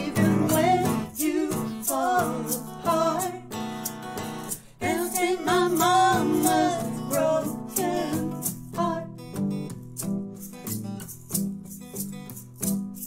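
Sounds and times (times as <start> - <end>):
women singing in harmony: 0.0 - 3.6, 4.8 - 9.2
strummed acoustic guitars: 0.0 - 13.0.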